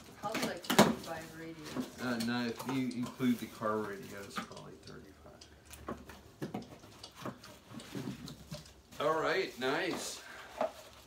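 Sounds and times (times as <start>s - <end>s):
cardboard and paper rustling: 0.0s - 4.7s, 5.9s - 11.0s.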